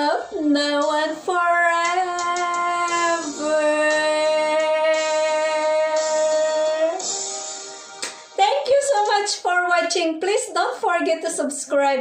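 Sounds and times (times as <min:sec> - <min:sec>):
woman singing slow ballad: 0:00.6 - 0:07.1.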